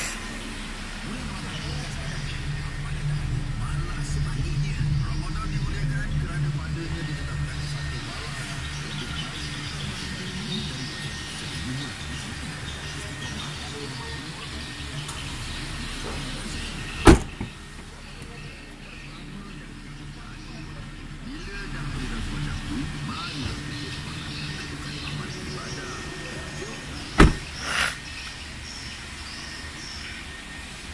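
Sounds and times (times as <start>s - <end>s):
car engine idling: 0.0s - 30.9s
car door shutting: 17.0s - 17.6s, 27.1s - 27.9s.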